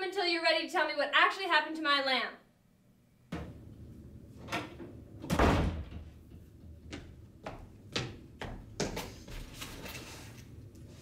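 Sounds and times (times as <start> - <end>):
door slamming shut: 4.5 - 6.2.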